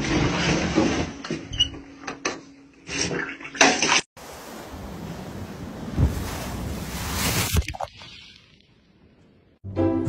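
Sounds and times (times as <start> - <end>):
surf: 4.2 - 8.6
water splashing in a shower: 4.2 - 8.6
wind: 4.2 - 9.6.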